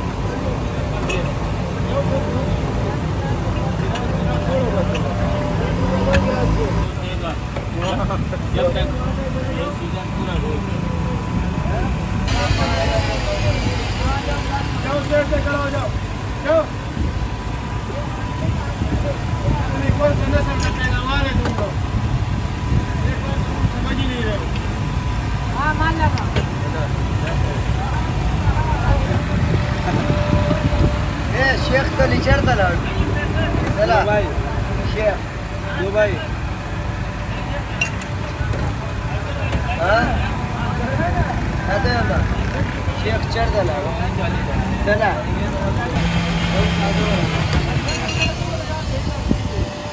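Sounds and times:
low traffic rumble: 0.0s - 49.9s
voices talking: 0.0s - 49.9s.

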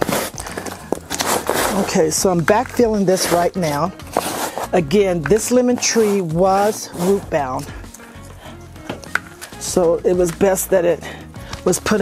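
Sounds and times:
hand brushing potting soil: 0.0s - 8.5s, 9.2s - 12.0s.

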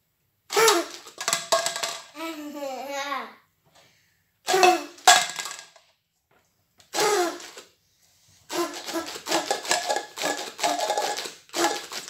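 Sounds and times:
party blower whistle blast: 0.5s - 1.0s, 6.9s - 7.6s, 8.5s - 10.8s, 11.6s - 11.9s.

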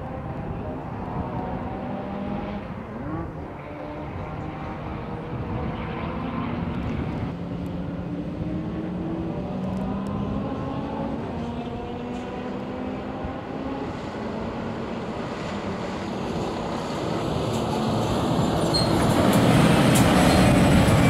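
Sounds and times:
diesel truck engines rumbling: 14.4s - 21.0s.

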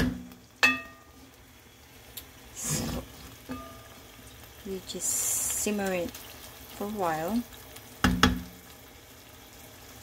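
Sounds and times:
squid sizzling in a pan: 0.0s - 10.0s.

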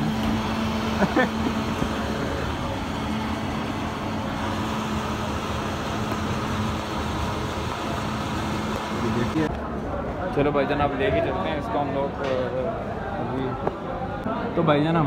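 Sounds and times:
blender motor whirring: 0.0s - 9.5s.

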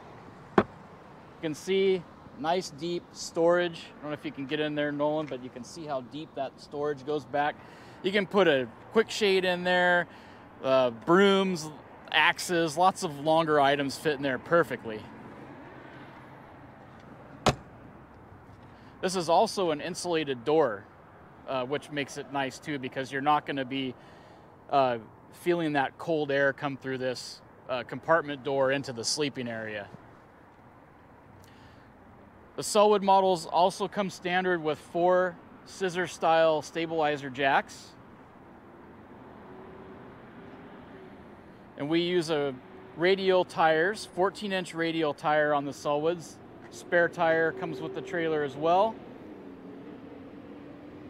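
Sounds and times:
compartment door slamming: 17.4s - 17.7s.

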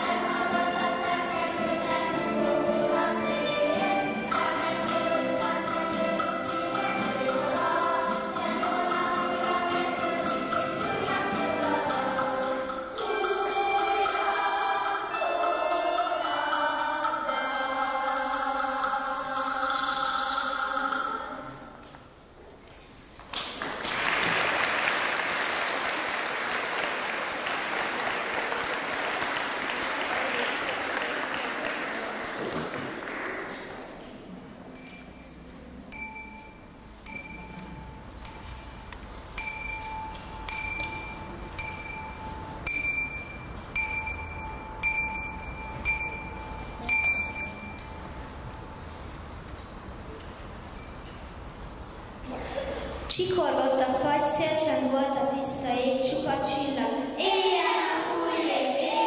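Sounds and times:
audience applauding: 23.3s - 33.9s
bell-like ringing tone: 35.9s - 49.0s.

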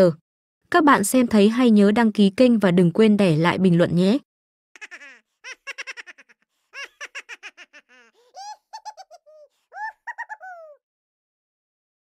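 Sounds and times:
high-pitched giggling: 4.8s - 10.8s.

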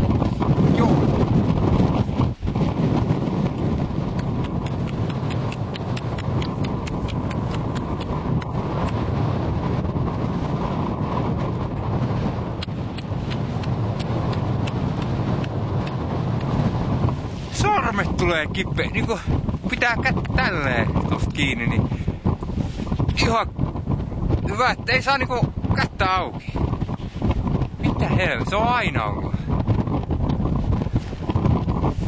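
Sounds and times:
wind noise on microphone: 0.0s - 32.0s.

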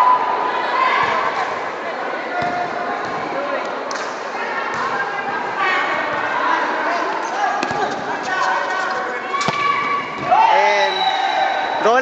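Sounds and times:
shouts and chatter: 0.0s - 12.0s.

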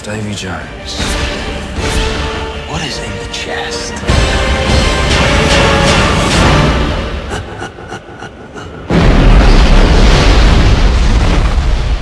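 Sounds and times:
dramatic trailer music: 0.0s - 12.0s
deep rumbling boom: 8.9s - 12.0s.

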